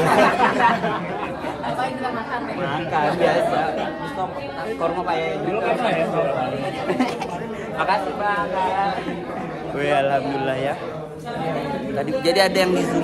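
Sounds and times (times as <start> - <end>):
overlapping chatter: 0.0 - 13.0.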